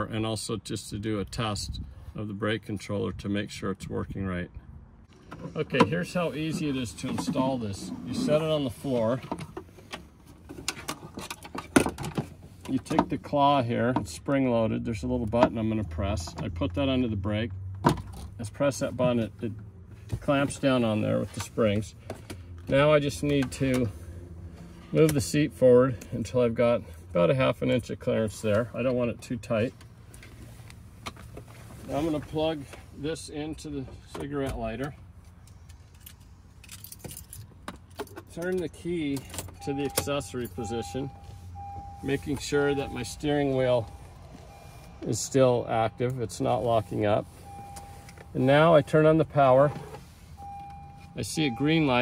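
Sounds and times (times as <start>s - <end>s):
handling clicks and knocks: 34.1s - 40.6s
car keys jingling: 34.2s - 52.0s.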